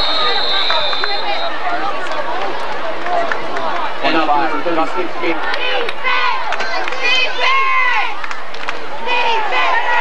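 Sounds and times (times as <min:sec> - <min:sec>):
babble of spectators' voices: 0:00.0 - 0:10.0.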